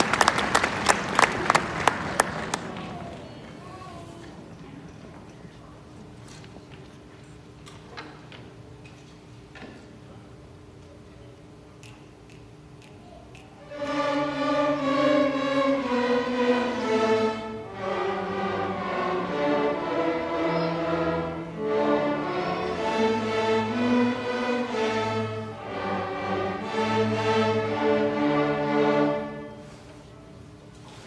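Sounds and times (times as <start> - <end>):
string orchestra playing: 13.6 - 29.9.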